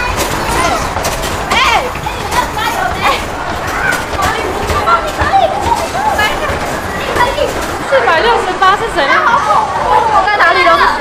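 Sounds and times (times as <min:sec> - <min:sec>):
arcade background din: 0:00.0 - 0:11.0
young women chattering excitedly: 0:00.5 - 0:11.0.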